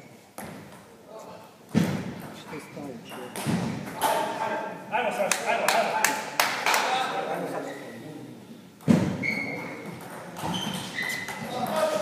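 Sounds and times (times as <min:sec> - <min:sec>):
dull thumps echoing in a hall: 0:01.6 - 0:04.7, 0:08.7 - 0:12.0
men talking: 0:02.3 - 0:08.6.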